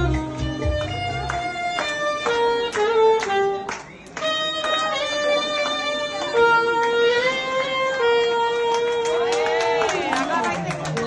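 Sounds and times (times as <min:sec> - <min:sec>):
saxophone slow melody: 0:00.0 - 0:09.3.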